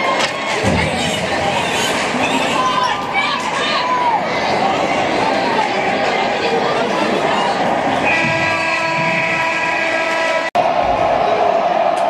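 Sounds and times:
loud multi-tone horn blast: 8.0 - 10.6.

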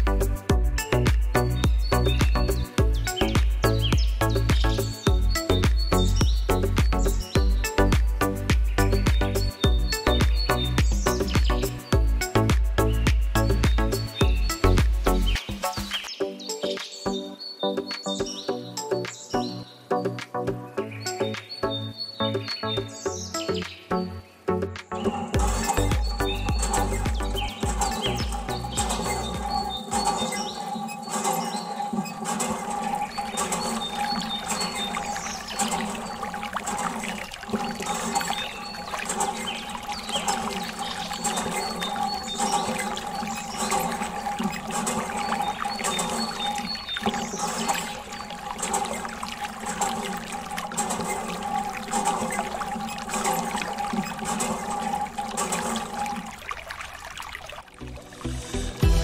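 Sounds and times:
water pouring and trickling: 0.0 - 16.1, 25.3 - 58.9
background music with sustained tones: 0.0 - 59.0.

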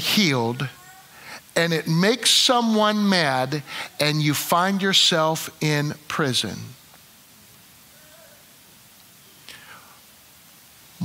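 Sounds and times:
faint room hiss: 0.0 - 11.0.

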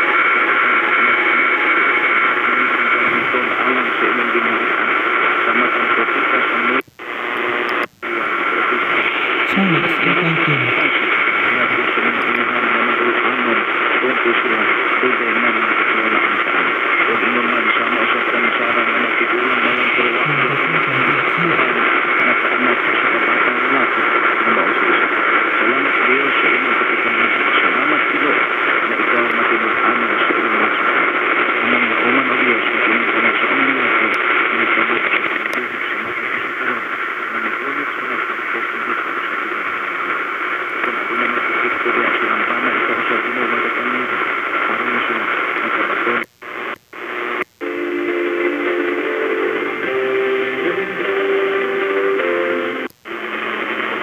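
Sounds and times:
faint voice on radio: 0.0 - 39.7, 40.7 - 54.0
different radio station signal: 0.0 - 54.0
heavy radio static: 0.0 - 54.0.

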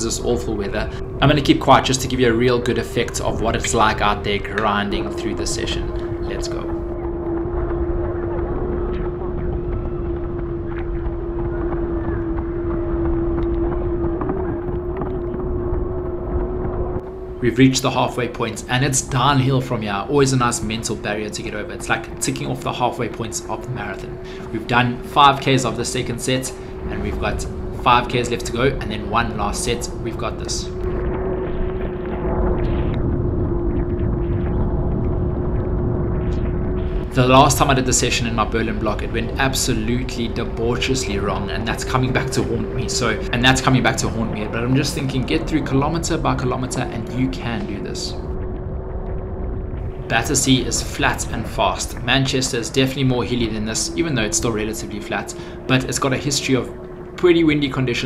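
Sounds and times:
steady hum: 0.0 - 58.0
wind rumbling on microphone: 0.0 - 58.0.

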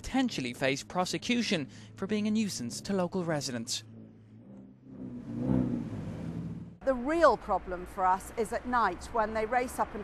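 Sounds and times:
sports car engine running: 0.5 - 6.8.

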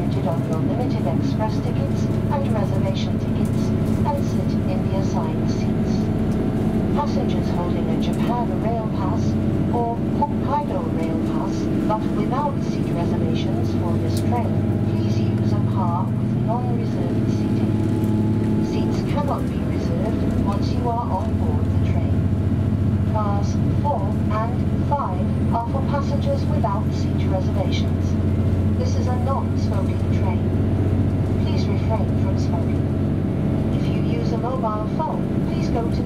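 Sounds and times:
railcar engine drone: 0.0 - 36.0
train running noise: 0.0 - 36.0.

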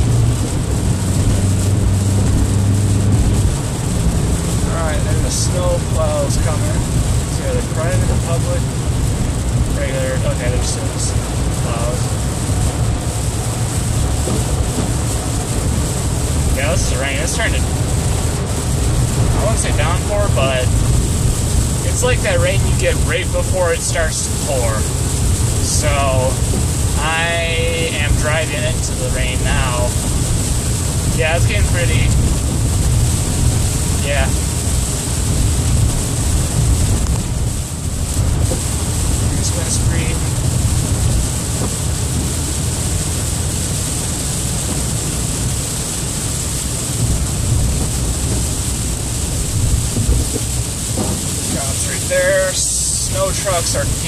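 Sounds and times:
car engine and tyre rumble: 0.0 - 54.0
tyres hissing on wet pavement: 0.0 - 54.0.

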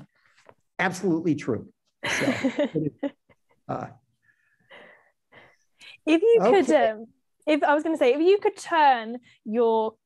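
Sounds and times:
person laughing softly: 2.1 - 3.1
person saying uh: 2.8 - 3.0, 6.2 - 6.9.

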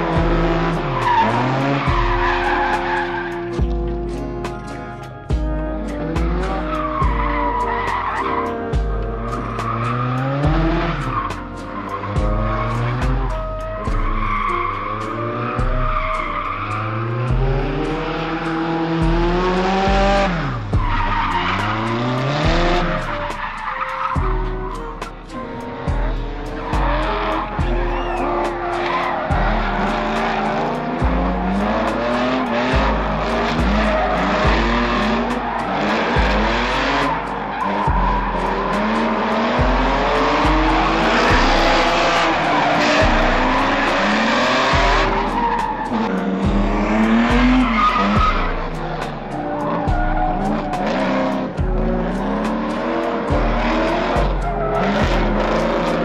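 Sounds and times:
tire squeal: 0.0 - 5.1, 5.8 - 56.0
bass-heavy music with beat: 0.0 - 56.0
car engines revving: 0.0 - 56.0.

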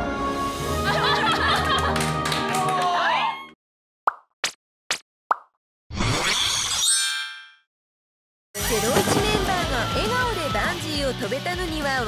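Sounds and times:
busy music with voices: 8.6 - 12.0.

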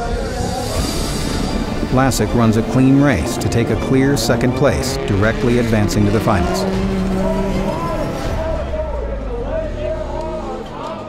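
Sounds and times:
racing car engines: 0.0 - 11.0.

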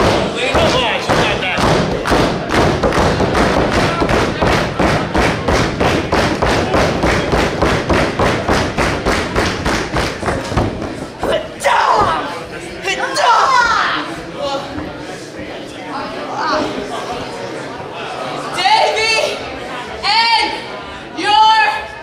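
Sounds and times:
crowd pounding rhythmic thumps: 0.0 - 12.3
crowd voices: 0.0 - 22.0.

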